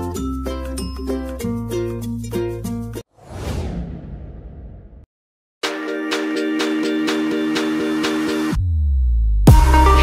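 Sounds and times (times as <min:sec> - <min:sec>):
low rumble: 0:03.2 - 0:05.1
whoosh of rushing noise: 0:03.2 - 0:05.1.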